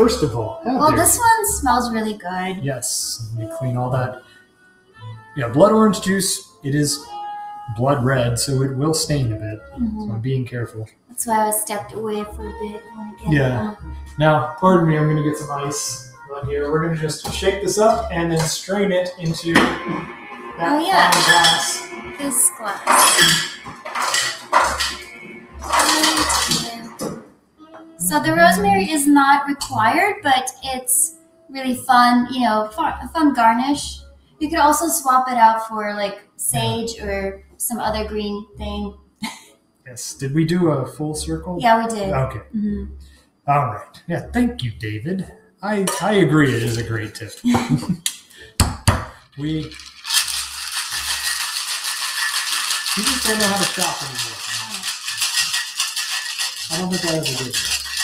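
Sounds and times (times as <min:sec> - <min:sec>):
ice and glassware clinking: 0:21.0 - 0:22.1, 0:22.8 - 0:27.2, 0:49.4 - 0:58.0.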